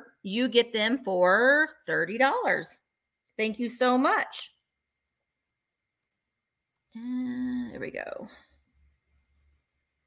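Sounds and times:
computer mouse clicks: 6.0 - 6.9.

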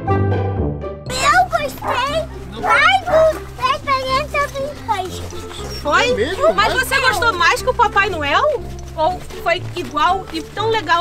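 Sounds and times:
young child talking: 1.1 - 5.4.

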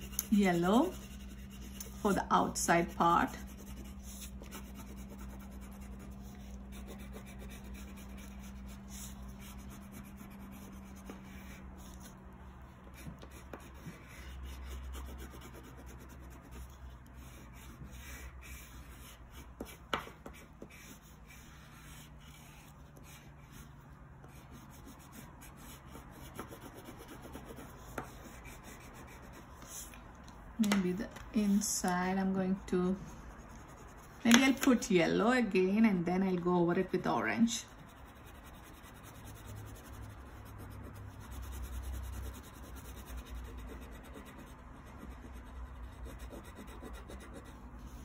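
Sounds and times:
crayon rubbing on paper: 0.0 - 12.1, 13.0 - 29.9, 37.7 - 48.0.

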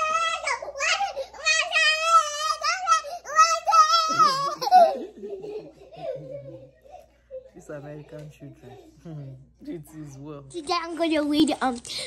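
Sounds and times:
child laughing and giggling: 0.0 - 7.5
woman laughing: 4.1 - 7.0.

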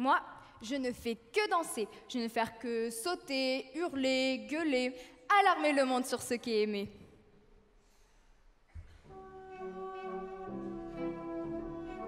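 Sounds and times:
horns: 8.9 - 12.0.

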